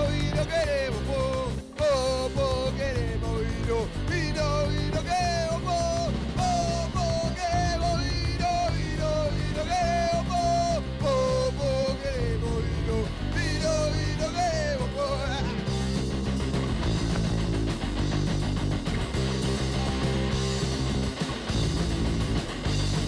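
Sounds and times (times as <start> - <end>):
man singing: 0.0 - 15.8
drum kit: 0.0 - 23.0
electric bass: 0.0 - 23.0
electric guitar: 0.0 - 23.0.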